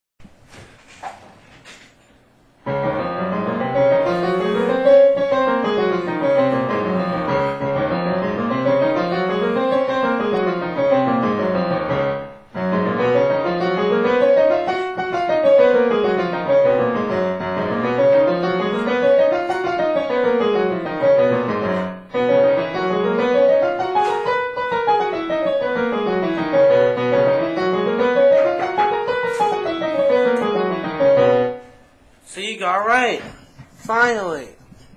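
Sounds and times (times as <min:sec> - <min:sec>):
digital piano playing scales: 0:02.6 - 0:31.8.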